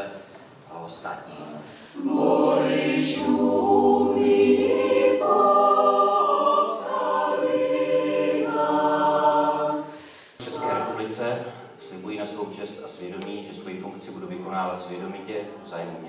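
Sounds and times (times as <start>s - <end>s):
mixed choir singing in harmony: 1.8s - 11.9s.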